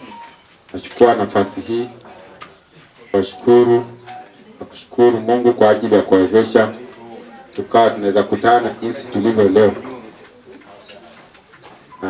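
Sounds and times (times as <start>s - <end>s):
faint background noise: 0.0s - 12.0s.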